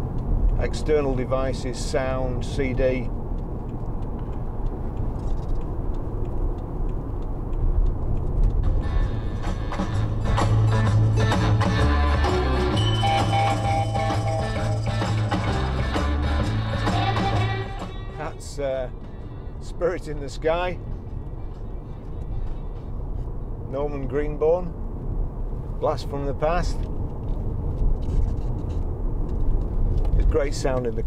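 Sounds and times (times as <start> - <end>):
road and engine noise in car: 0.0 - 31.0
rock song on car stereo: 8.8 - 18.2.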